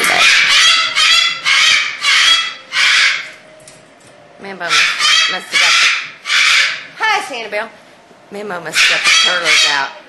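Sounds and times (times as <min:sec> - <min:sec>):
parrot harsh raspy calls: 0:00.0 - 0:03.4, 0:04.6 - 0:07.0, 0:08.7 - 0:10.0.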